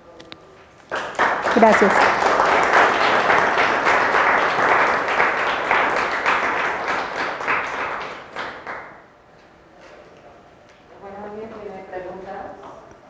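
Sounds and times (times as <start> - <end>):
audience applauding: 0.9 - 9.0.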